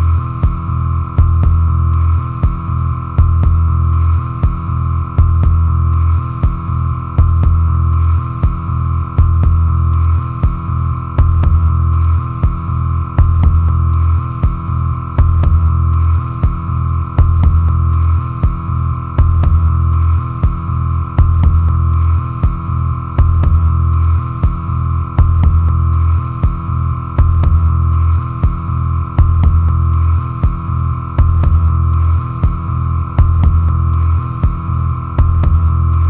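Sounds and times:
deep pulsing electronic hum: 0.0s - 36.0s
steady high drone: 0.0s - 36.0s.

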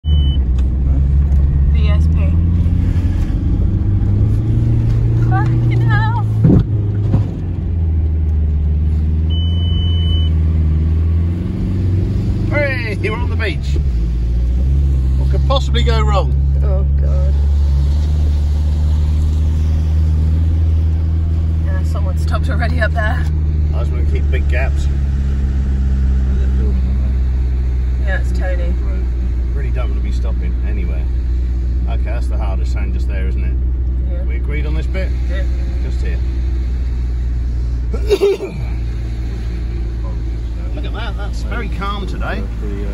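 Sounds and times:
car engine and road drone: 0.0s - 42.9s
thump: 6.4s - 7.4s.

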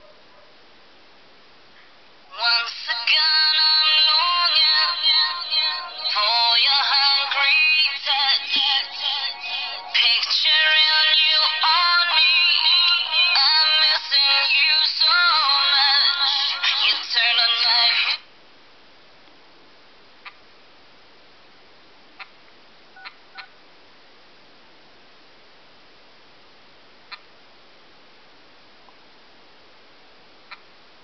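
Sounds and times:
song from phone loudspeaker: 2.3s - 18.2s.

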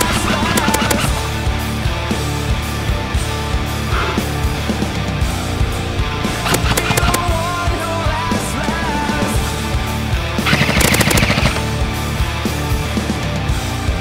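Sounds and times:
airsoft gun rapid fire: 0.0s - 1.4s, 6.1s - 7.7s, 10.4s - 11.8s
heavy metal music: 0.0s - 14.0s.

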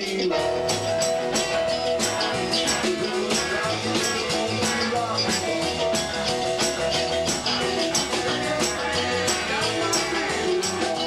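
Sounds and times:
electric guitar: 0.0s - 11.0s
piano: 0.0s - 11.0s
rockabilly band playing: 0.0s - 11.0s.

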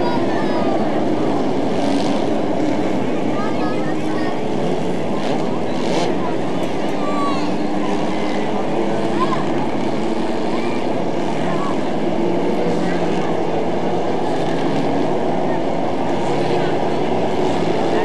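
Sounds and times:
small race car engines: 0.0s - 18.0s.

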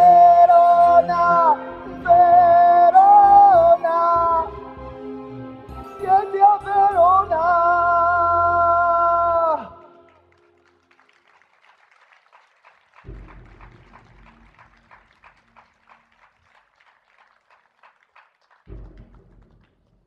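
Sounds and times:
faint audience applause: 9.6s - 19.9s.

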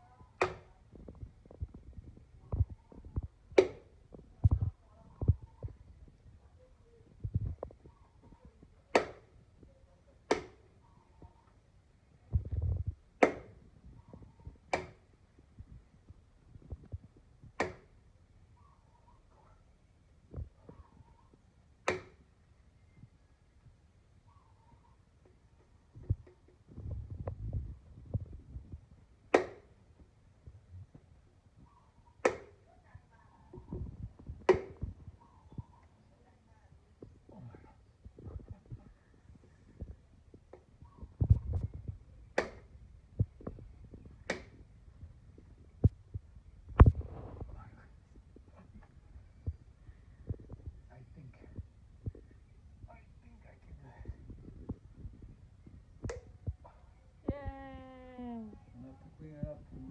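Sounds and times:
machete striking coconut: 0.4s - 0.7s, 3.6s - 3.9s, 8.9s - 9.3s, 10.3s - 10.6s, 13.2s - 13.5s, 14.7s - 15.0s, 17.6s - 17.9s, 21.9s - 22.2s, 29.3s - 29.7s, 32.2s - 32.6s, 34.5s - 34.8s, 42.4s - 42.7s.

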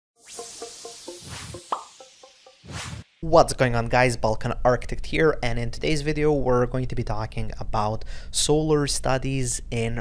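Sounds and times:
rising blip: 0.2s - 3.2s
short plucked notes: 0.3s - 2.8s.

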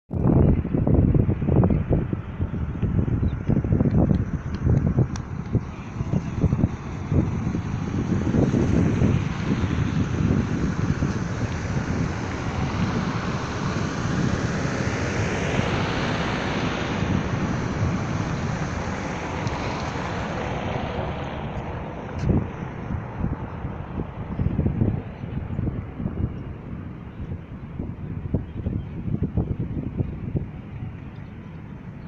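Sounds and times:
broad rushing noise: 0.1s - 32.0s
wind buffeting microphone: 0.1s - 32.0s.

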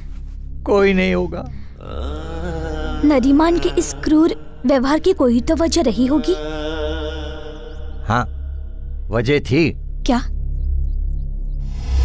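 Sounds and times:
low drone: 1.5s - 12.0s
held chant-like note: 1.8s - 4.6s, 5.8s - 9.0s.

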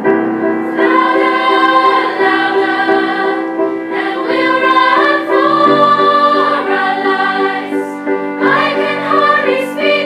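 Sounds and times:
piano accompaniment: 0.0s - 10.0s
girls' choir singing: 0.6s - 10.0s.

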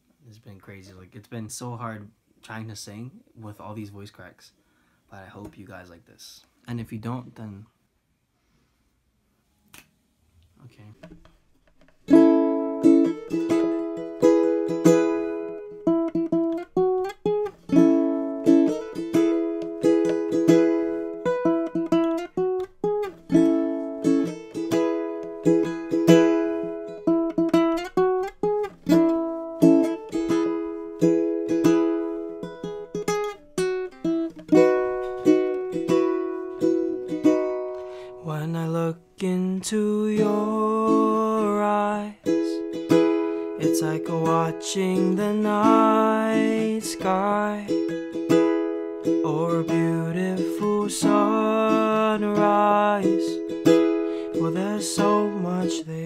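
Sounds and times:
ukulele strumming chords: 11.0s - 56.0s.

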